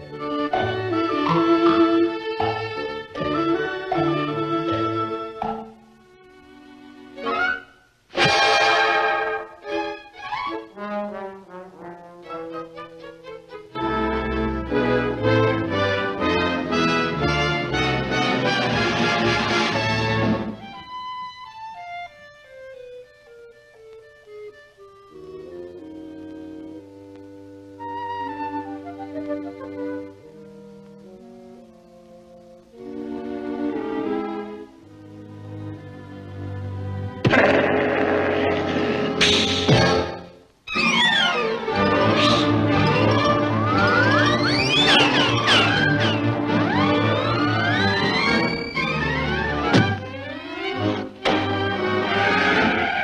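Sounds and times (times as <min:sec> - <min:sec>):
full orchestra passage: 0:06.8 - 0:20.6, 0:41.3 - 0:53.0
cartoon lion roaring: 0:37.2 - 0:40.0.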